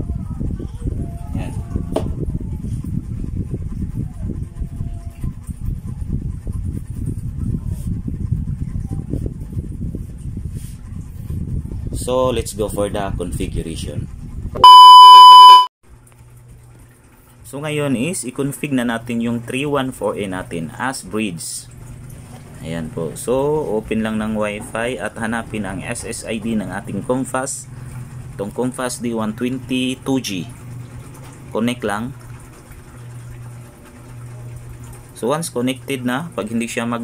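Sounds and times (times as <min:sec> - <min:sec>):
high test-tone beep: 0:14.6 - 0:15.7.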